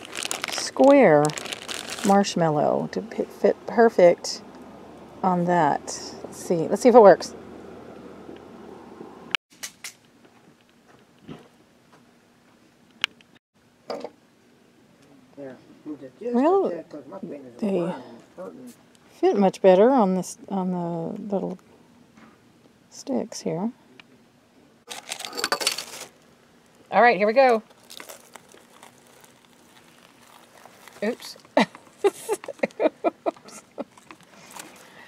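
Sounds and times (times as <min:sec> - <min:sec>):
clinking and rustling handling noise: 0:24.9 - 0:26.2.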